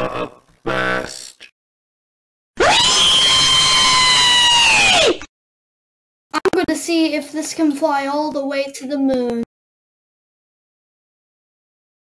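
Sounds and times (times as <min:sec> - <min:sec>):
person screaming: 0:02.6 - 0:05.2.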